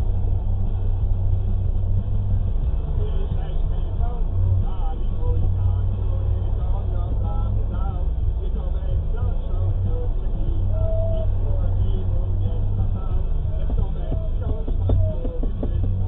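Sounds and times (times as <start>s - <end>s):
car idling: 0.0s - 16.0s
faint voices: 0.0s - 16.0s.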